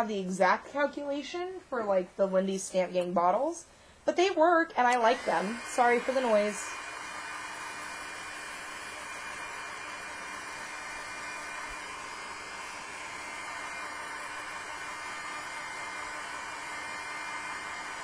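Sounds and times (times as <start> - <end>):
electric blower running: 4.9 - 18.0.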